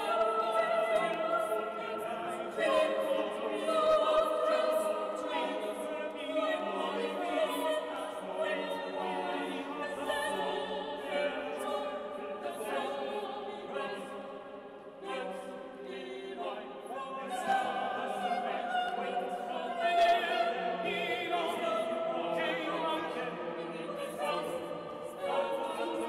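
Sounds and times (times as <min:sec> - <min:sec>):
choir singing sustained chords: 0:00.0 - 0:26.0.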